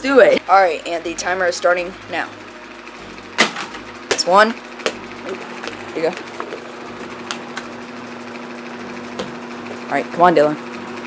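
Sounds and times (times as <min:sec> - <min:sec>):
ball striking backboard: 0:03.3 - 0:07.8, 0:09.1 - 0:09.4.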